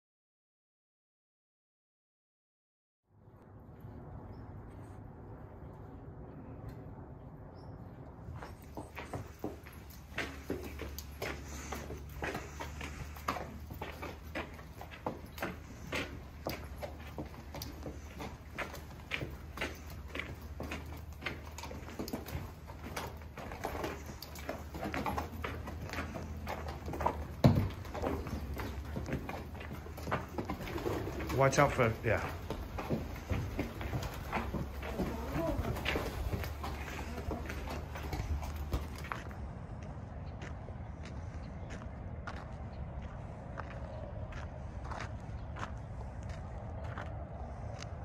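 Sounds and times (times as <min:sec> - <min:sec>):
horse hooves clopping: 0:03.7 - 0:48.0.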